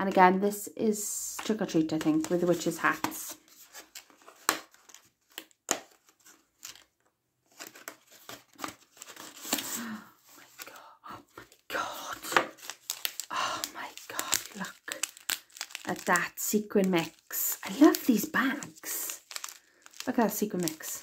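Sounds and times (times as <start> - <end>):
card and plastic pouch rustling: 1.3 - 21.0.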